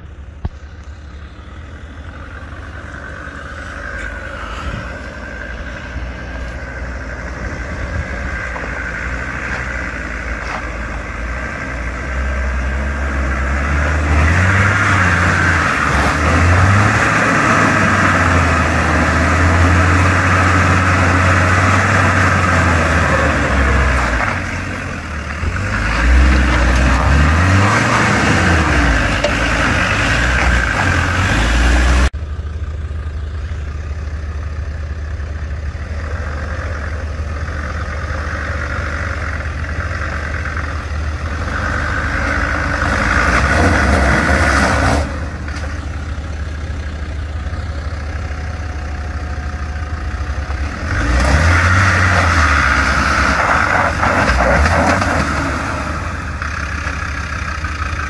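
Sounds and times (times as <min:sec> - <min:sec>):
off-road vehicle engine revving: 0:00.0 - 0:32.2, 0:35.7 - 0:58.0
tyres on gravel: 0:00.0 - 0:58.0.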